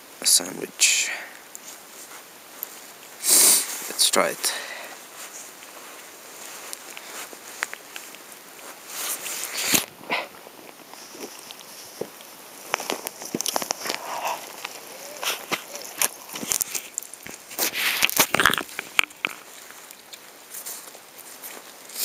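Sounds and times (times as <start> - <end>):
person chewing a sandwich: 9.4 - 20.4.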